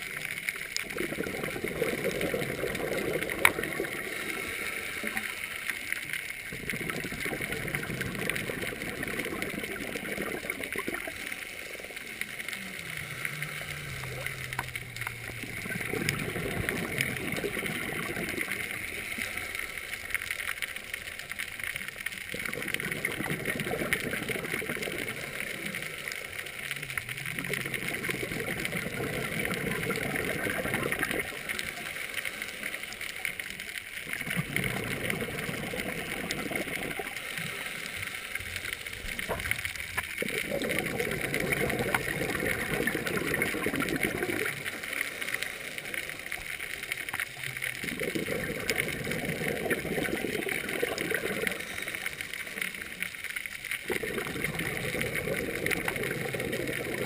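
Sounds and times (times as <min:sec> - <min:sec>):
regulator bubbles gurgling: 0:00.0 - 0:57.0
steady hiss: 0:00.0 - 0:57.0.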